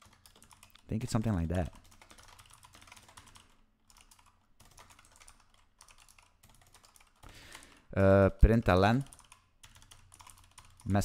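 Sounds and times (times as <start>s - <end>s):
typing on computer keyboard: 0.0s - 7.8s, 9.0s - 11.0s.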